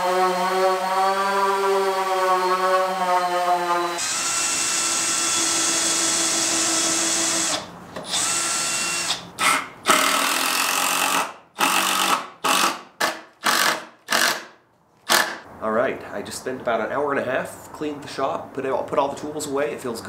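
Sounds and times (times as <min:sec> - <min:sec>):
handheld power tool running: 0:00.0 - 0:12.7.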